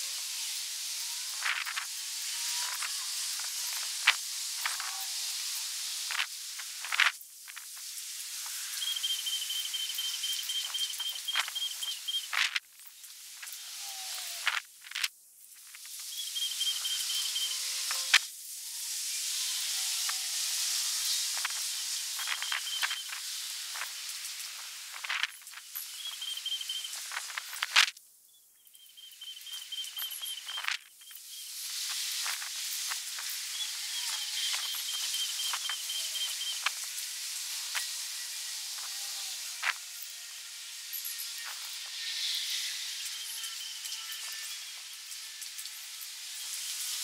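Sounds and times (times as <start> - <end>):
steady high hiss: 0.0 - 47.0.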